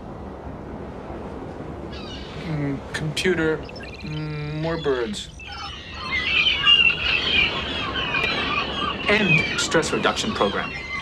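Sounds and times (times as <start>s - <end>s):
songbirds chirping and singing: 1.9s - 11.0s.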